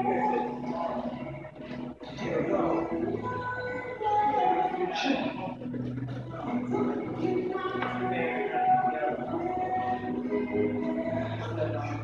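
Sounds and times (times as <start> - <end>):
background music with sung notes: 0.0 - 12.0
indistinct voices: 0.0 - 12.0.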